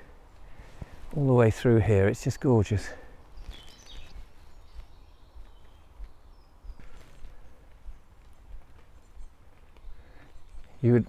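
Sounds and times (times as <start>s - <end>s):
soft footsteps on path: 0.0s - 11.0s
faint bird chirps: 2.3s - 11.0s.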